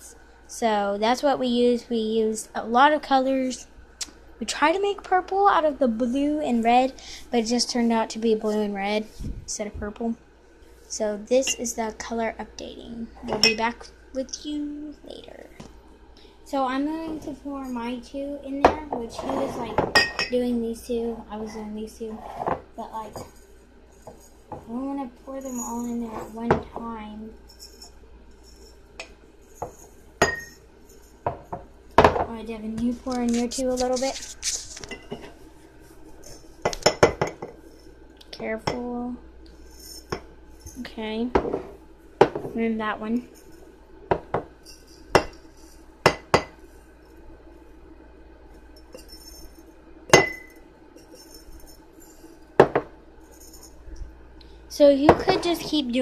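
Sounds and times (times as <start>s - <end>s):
glass jars clinking: 13.3s - 13.6s, 19.2s - 20.4s, 29.5s - 30.6s, 48.8s - 53.7s.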